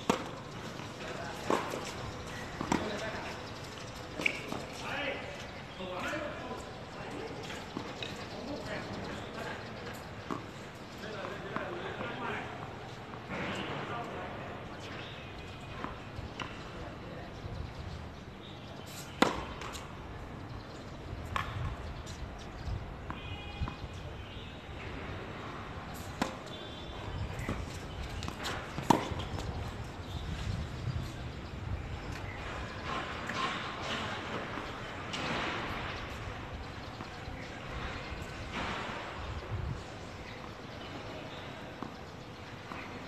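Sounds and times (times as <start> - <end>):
low outdoor background: 0.0 - 43.0.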